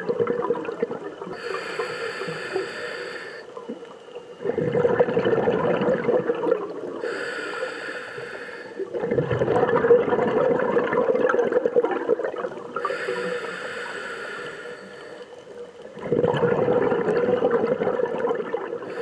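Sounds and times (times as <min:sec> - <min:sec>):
exhaled bubbles gurgling: 0:00.0 - 0:07.5, 0:08.6 - 0:19.0
regulator inhalation hiss: 0:01.3 - 0:03.7, 0:06.9 - 0:08.9, 0:12.7 - 0:15.5.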